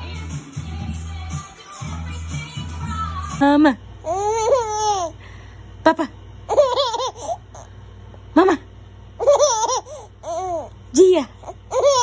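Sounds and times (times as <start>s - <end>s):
baby laughing: 4.0s - 5.2s, 6.5s - 7.7s, 9.2s - 10.7s, 11.4s - 12.0s.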